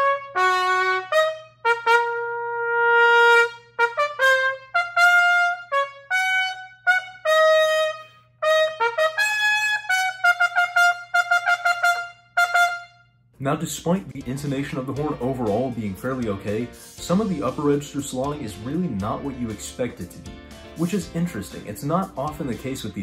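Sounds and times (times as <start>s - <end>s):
solo trumpet playing: 0.0s - 13.3s.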